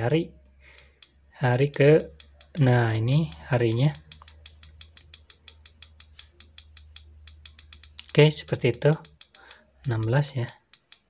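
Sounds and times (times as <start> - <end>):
pushbutton clicking: 0.8 - 11.0.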